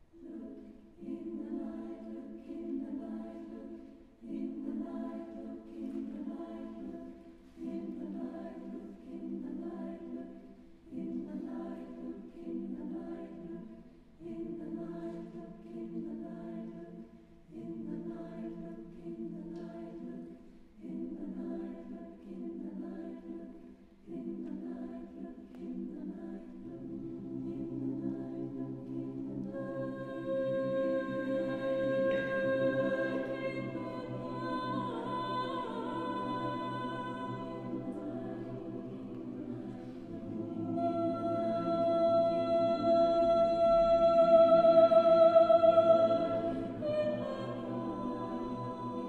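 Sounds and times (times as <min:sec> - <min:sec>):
choir singing a cappella: 0:00.0 - 0:49.0.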